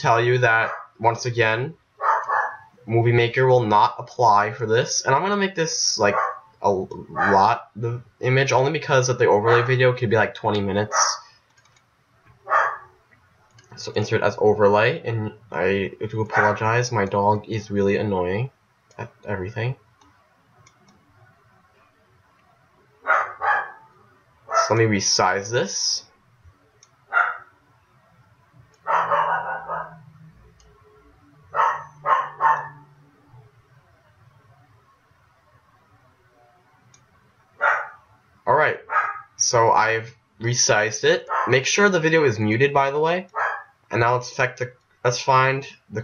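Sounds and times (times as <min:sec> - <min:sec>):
dog barking: 0:00.6 - 0:00.9, 0:02.0 - 0:02.7, 0:06.1 - 0:06.5, 0:10.9 - 0:11.2, 0:12.5 - 0:12.9, 0:23.0 - 0:23.9, 0:27.1 - 0:27.5, 0:28.9 - 0:30.0, 0:31.5 - 0:32.8, 0:37.6 - 0:38.0, 0:38.8 - 0:39.3, 0:41.3 - 0:41.5, 0:43.3 - 0:43.7.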